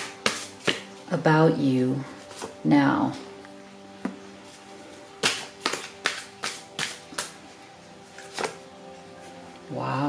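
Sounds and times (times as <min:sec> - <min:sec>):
soft background music: 0:00.0 - 0:10.0
card snaps and taps: 0:05.2 - 0:07.4.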